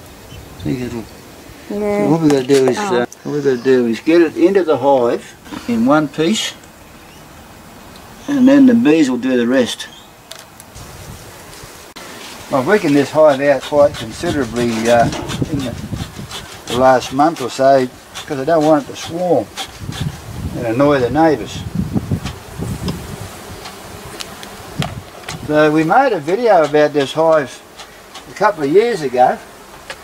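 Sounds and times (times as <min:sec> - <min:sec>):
low background hiss: 0:00.0 - 0:10.7
bees buzzing: 0:00.1 - 0:30.0.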